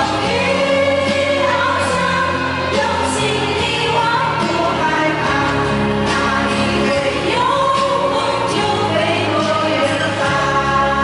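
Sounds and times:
amplified backing music: 0.0s - 11.0s
woman singing pop song: 0.0s - 11.0s.

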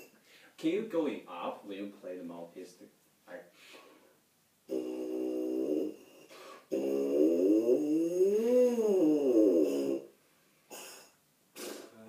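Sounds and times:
tuba mouthpiece buzzing: 4.7s - 10.1s.

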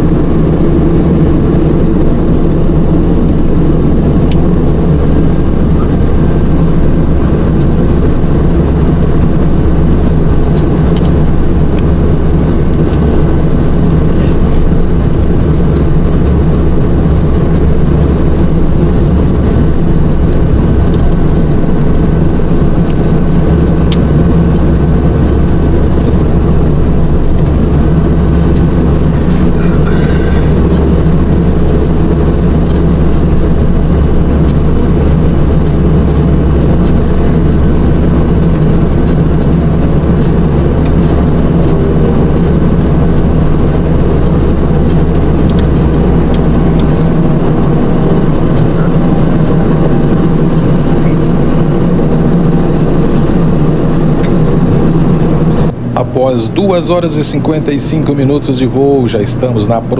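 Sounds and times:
turboprop engines drone: 0.0s - 59.9s.

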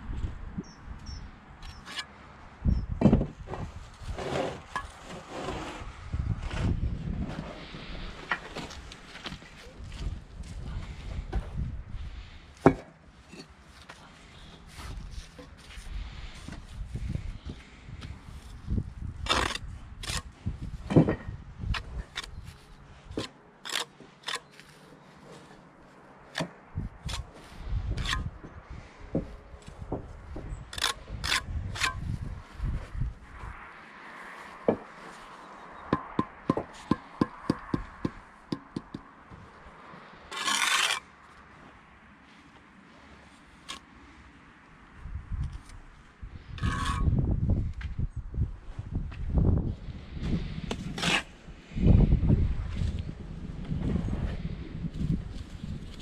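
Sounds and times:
trowel scraping mortar: 4.0s - 6.8s, 19.2s - 20.4s, 22.1s - 25.6s, 40.3s - 41.1s, 46.6s - 47.1s, 50.7s - 51.3s
trowel tapping bricks: 35.9s - 39.1s.

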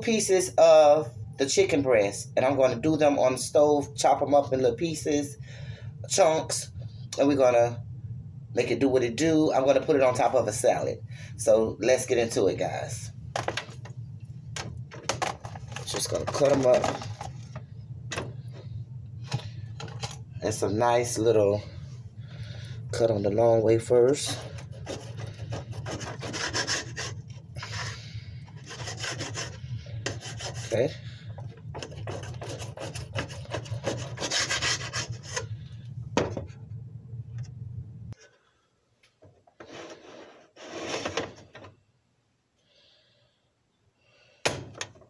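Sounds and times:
blade scraping a plate: 24.2s - 30.9s, 31.7s - 35.5s, 39.6s - 41.4s
knife sawing through meat: 24.6s - 28.0s, 28.6s - 30.8s, 32.0s - 35.4s.

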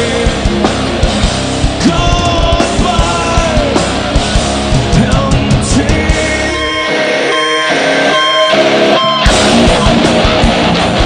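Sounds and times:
electric guitar ringing chords: 0.0s - 11.0s.

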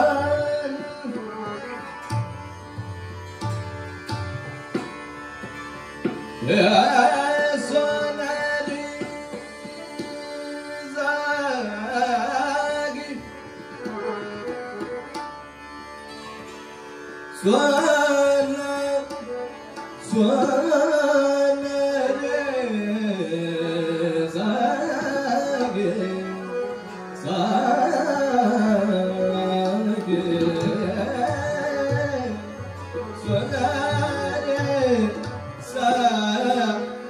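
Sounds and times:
harmonium: 0.0s - 37.0s
tabla: 0.0s - 37.0s.

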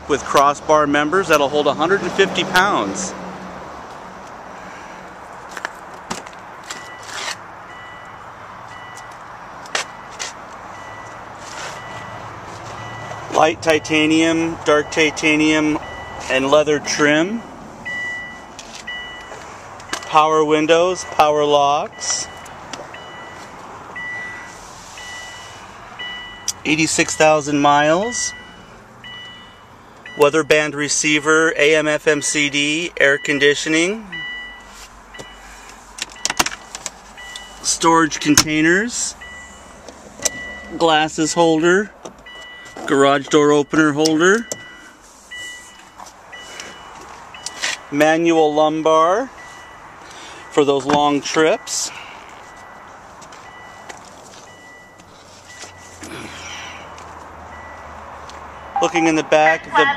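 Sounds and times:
car warning chime beeping: 6.7s - 59.9s
high-pitched electronic warning tone: 38.7s - 41.0s, 58.5s - 59.9s.

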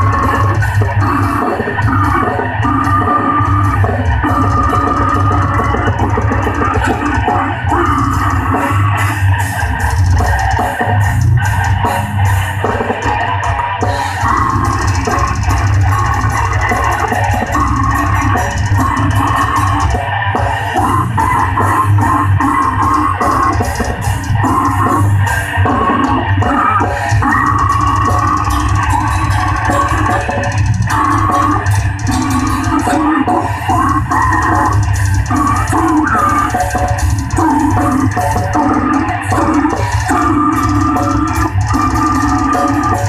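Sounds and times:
heavy metal band playing: 0.0s - 43.0s.

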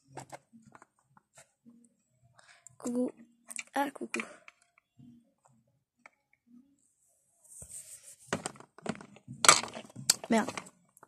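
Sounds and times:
hard plastic knocks and clatters: 8.3s - 10.7s.

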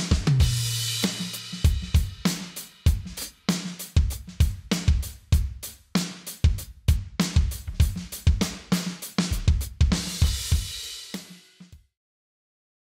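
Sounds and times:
electronic drum groove: 0.0s - 11.8s.

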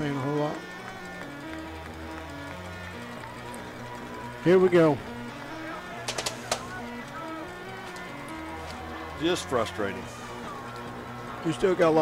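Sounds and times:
music playing: 0.0s - 12.0s
stadium crowd noise: 0.0s - 12.0s.

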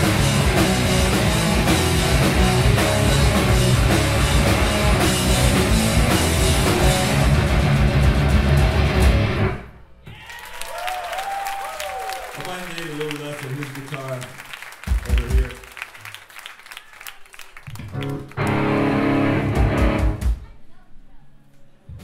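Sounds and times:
punk band playing loudly: 0.0s - 9.6s, 18.0s - 20.4s
stray drum and bass hits: 0.0s - 9.6s, 19.4s - 20.5s
guitar amp feedback: 0.0s - 9.7s, 18.0s - 20.2s
crowd cheering and clapping: 10.0s - 20.1s.

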